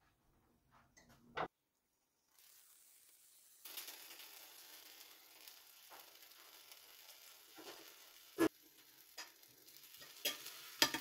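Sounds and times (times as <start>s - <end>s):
food sizzling in a frying pan: 2.2s - 11.0s.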